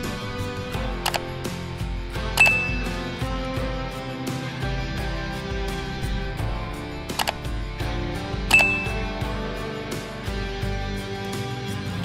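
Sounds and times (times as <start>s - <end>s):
background music: 0.0s - 12.0s
mouse click: 7.2s - 7.4s.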